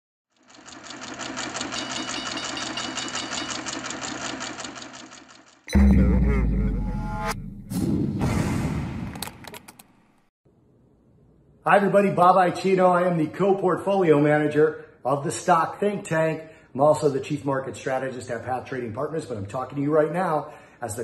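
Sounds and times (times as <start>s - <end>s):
loud deep boom: 5.7s - 9.2s.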